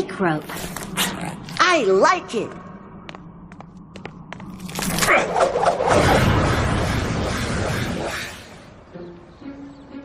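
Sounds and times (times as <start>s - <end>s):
magical whoosh: 4.6s - 8.9s.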